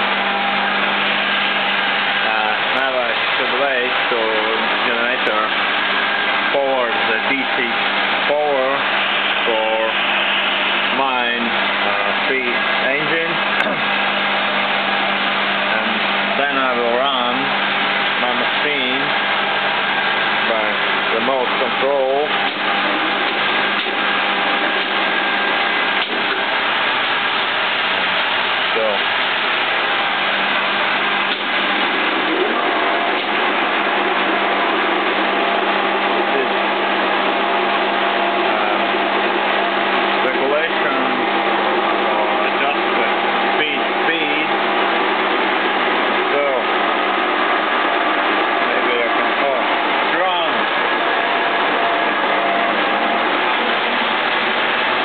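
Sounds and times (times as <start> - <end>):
motor-generator electric hum and whir: 0.0 - 55.0.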